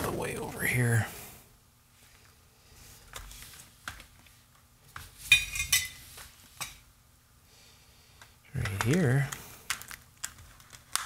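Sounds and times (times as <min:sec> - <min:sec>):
clicks: 0:08.2 - 0:11.0.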